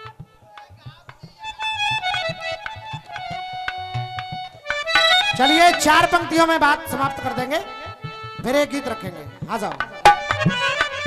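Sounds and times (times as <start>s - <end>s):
reedy harmonium melody: 0.0s - 11.0s
tabla strokes: 0.0s - 11.0s
man's amplified voice: 0.4s - 1.6s, 5.2s - 10.0s.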